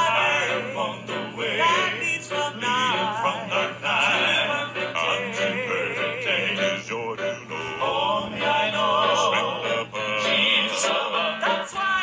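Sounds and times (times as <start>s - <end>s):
male quartet singing in harmony: 0.0s - 12.0s
steady low hum: 0.0s - 12.0s.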